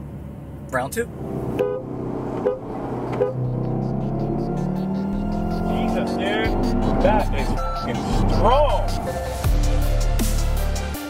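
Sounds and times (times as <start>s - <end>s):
car engine accelerating hard: 0.0s - 10.9s.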